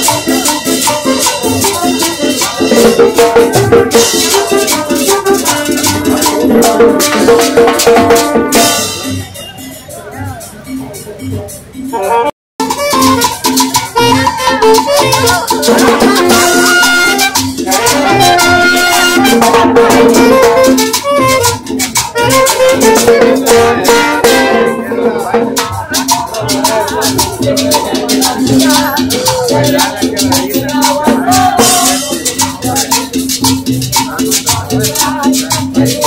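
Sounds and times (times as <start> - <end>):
saxophones playing melody: 0.0 - 9.8, 11.8 - 33.5
drums and cymbals: 0.0 - 36.0
rattling percussion rhythm: 0.0 - 36.0.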